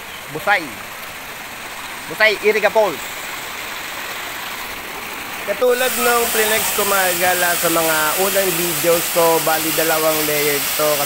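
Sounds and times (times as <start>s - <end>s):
water rushing in rocky stream: 0.0s - 11.0s
waterfall: 0.0s - 11.0s.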